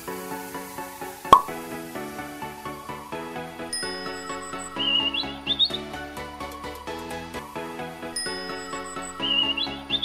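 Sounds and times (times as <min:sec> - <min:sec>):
background music: 0:00.0 - 0:10.0
bird tweet sound effect: 0:04.2 - 0:05.8, 0:08.3 - 0:10.0.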